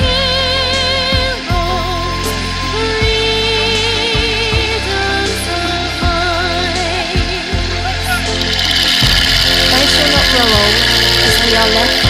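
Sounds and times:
low drone: 0.0s - 12.0s
music: 0.0s - 12.0s
person speaking: 9.6s - 12.0s.

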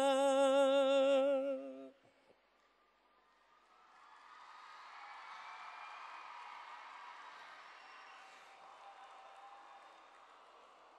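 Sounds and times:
faint applause: 3.6s - 10.9s.

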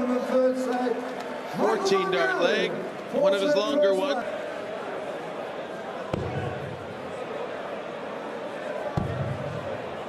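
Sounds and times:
crowd murmur: 0.0s - 10.0s.

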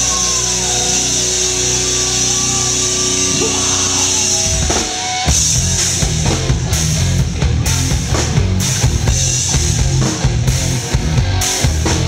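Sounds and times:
bass guitar: 0.0s - 12.0s
distorted electric guitar: 0.0s - 12.0s
rock band playing live: 0.0s - 12.0s.

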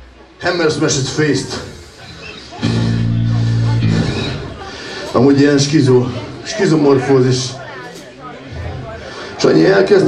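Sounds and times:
electric guitar low note: 2.6s - 5.0s.

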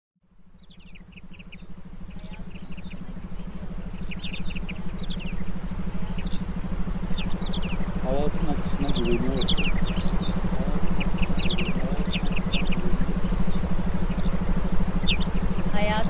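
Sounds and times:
rapidly pulsing low hum: 0.3s - 16.0s.

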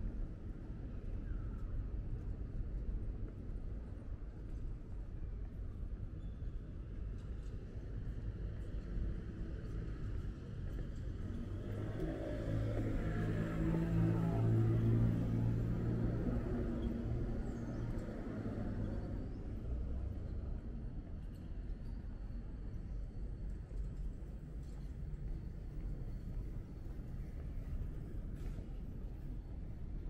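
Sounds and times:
city traffic rumble: 8.2s - 30.0s.

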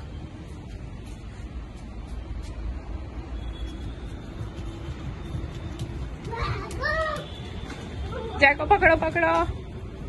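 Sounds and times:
child's high-pitched call: 6.3s - 7.4s.

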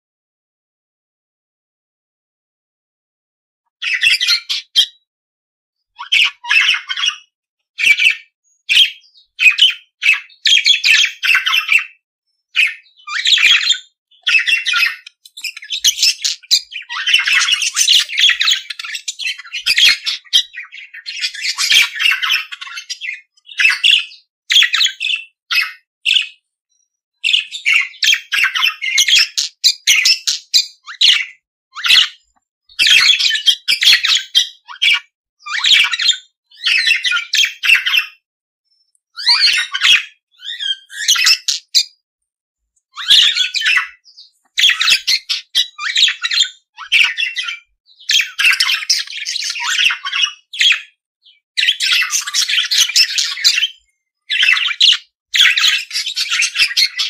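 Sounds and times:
budgerigars chattering: 3.8s - 5.0s, 6.0s - 12.0s, 12.6s - 26.4s, 27.2s - 32.2s, 32.8s - 38.1s, 39.2s - 41.9s, 43.0s - 51.0s, 51.6s - 57.0s.

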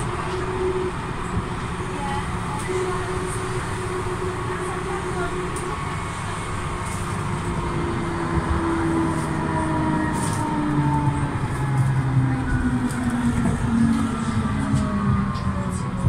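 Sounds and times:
tram wheels and motor rumbling: 0.0s - 16.0s.

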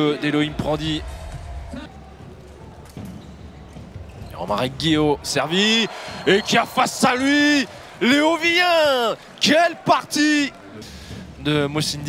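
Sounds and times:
low crowd murmur: 0.0s - 5.3s.

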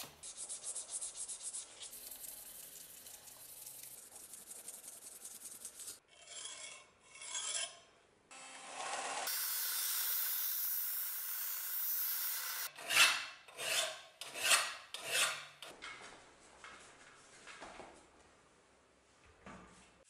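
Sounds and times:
belt sander grinding steel blade: 8.8s - 13.0s.

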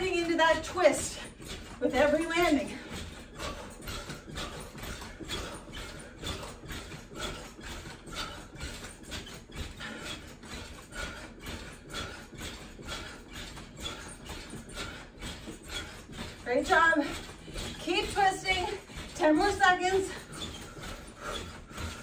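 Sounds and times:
trampoline thuds and spring creaks: 0.0s - 22.0s.

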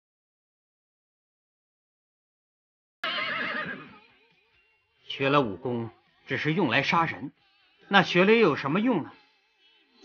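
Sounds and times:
horse whinnying: 3.0s - 4.4s.

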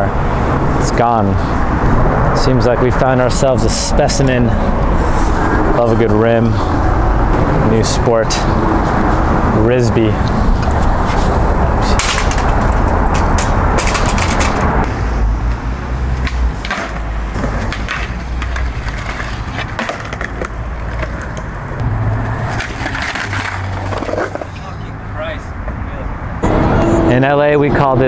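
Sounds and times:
skateboard wheels rolling on pavement: 0.0s - 25.8s
skateboard clacking: 16.2s - 21.7s
skateboard grinding on concrete ledge: 22.3s - 24.6s.

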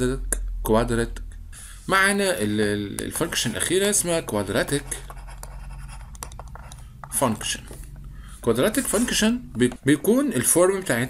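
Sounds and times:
faint steady hum: 0.0s - 11.0s
stylus scratching on tablet: 3.1s - 7.8s, 8.5s - 9.5s.

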